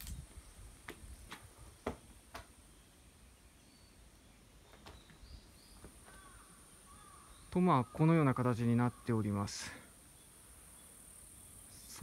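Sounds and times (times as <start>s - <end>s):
faint high-pitched hiss: 0.0s - 12.0s
faint bird chirps: 0.4s - 12.0s.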